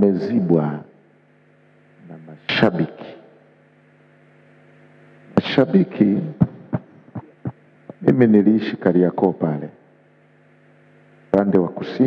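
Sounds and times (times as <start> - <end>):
man speaking into microphone: 0.0 - 1.0, 2.0 - 3.3, 5.4 - 6.5, 8.0 - 9.8, 11.3 - 12.0
faint electrical hum: 0.0 - 12.0.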